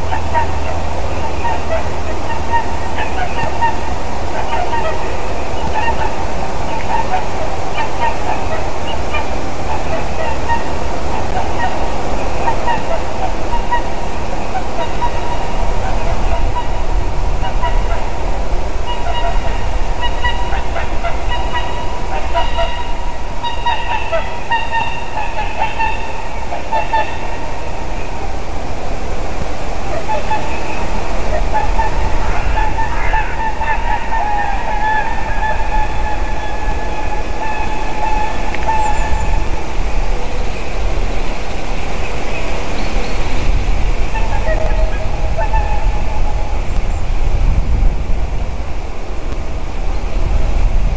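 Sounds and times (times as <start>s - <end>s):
swans honking: 0.0s - 50.3s
steady low rumble: 0.0s - 50.9s.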